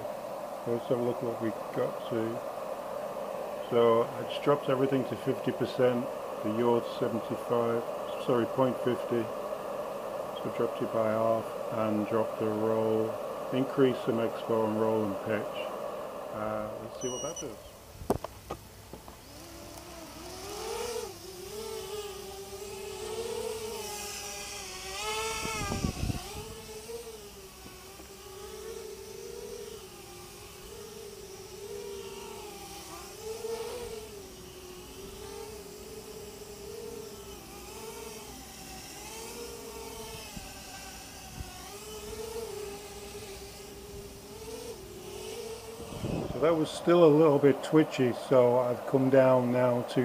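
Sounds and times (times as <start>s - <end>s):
quadcopter motors whining: 0.0s - 50.0s.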